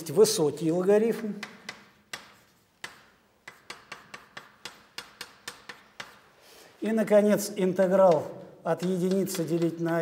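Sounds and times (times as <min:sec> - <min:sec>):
chalk tapping on blackboard: 0:01.4 - 0:06.4, 0:07.8 - 0:10.0.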